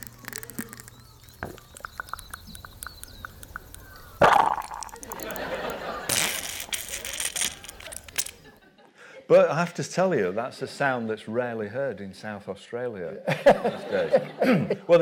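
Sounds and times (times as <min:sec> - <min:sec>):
earthworms slurping and gurgling: 0:00.0 - 0:05.4, 0:06.1 - 0:08.1
gushing water: 0:00.0 - 0:05.4.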